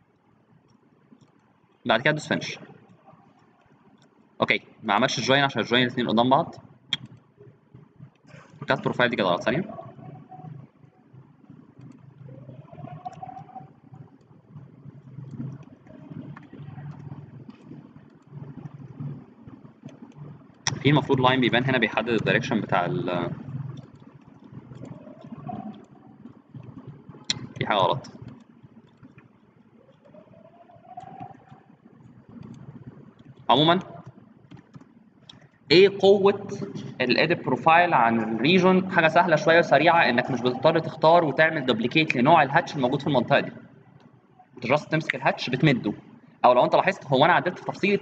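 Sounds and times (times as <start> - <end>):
low background hum: 0.0 - 48.0
computer mouse clicks: 0.1 - 4.3, 6.9 - 35.7
mouse clicks: 6.9 - 7.2.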